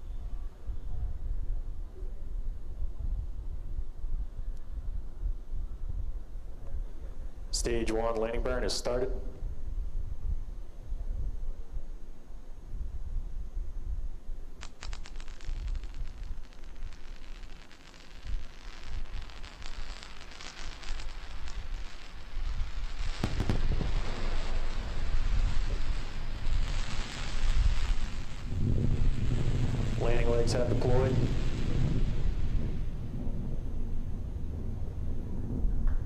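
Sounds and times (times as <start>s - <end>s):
rocket engine rumble and roar: 13.7s - 36.0s.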